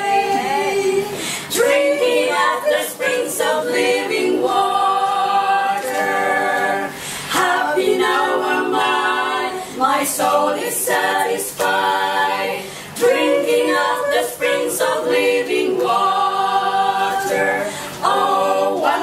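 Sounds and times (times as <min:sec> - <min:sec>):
women singing a hymn a cappella: 0:00.0 - 0:19.0.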